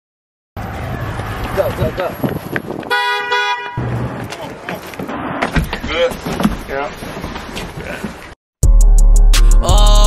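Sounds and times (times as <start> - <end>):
vehicle horn honking: 2.9 - 3.9.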